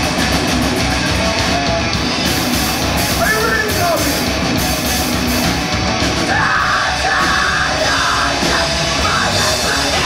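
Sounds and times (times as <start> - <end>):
death metal band playing: 0.0 - 10.0
harsh screamed vocals: 6.2 - 10.0.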